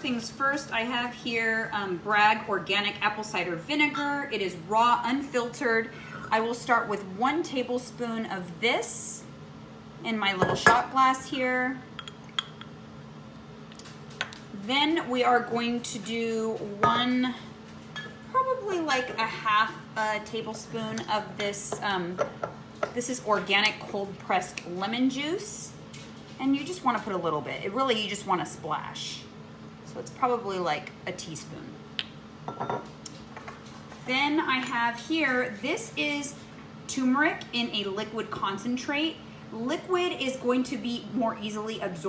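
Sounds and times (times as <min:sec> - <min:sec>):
glass clinking: 0:10.4 - 0:10.8, 0:12.0 - 0:12.7, 0:32.5 - 0:32.9
bottle set on stone countertop: 0:32.5 - 0:32.8.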